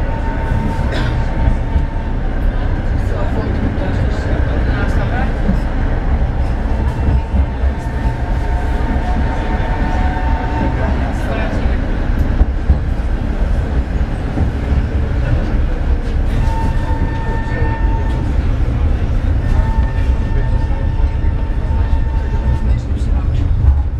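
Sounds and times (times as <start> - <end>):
tram low rumble: 0.0 - 23.9.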